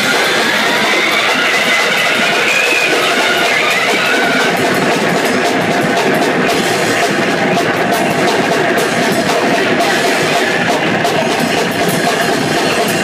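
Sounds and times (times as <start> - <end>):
wavering high tone: 0.0 - 4.8
cymbals crashing: 0.0 - 13.0
distorted noise: 0.0 - 13.0
drum kit hit hard: 0.0 - 13.0.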